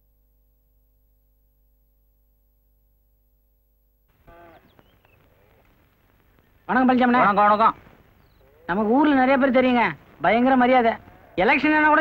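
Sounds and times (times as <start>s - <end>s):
short animal call: 4.2s - 5.6s
faint high bird chirps: 8.2s - 8.7s.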